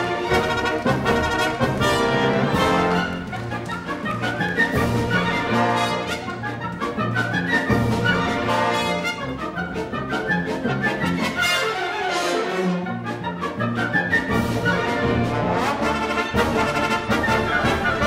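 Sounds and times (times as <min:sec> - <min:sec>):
orchestral music with brass: 0:00.0 - 0:18.0.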